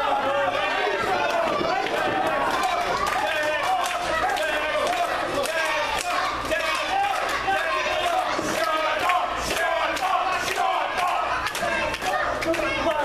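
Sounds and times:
crowd shouting and yelling: 0:00.0 - 0:13.0.

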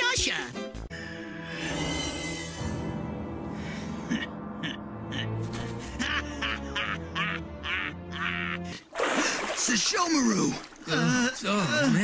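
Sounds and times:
background music: 0:00.0 - 0:09.7
cartoon man laughing: 0:04.6 - 0:08.7.

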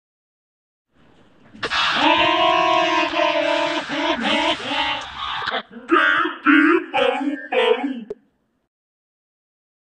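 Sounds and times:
distorted cartoon voice honking: 0:02.9 - 0:08.2.

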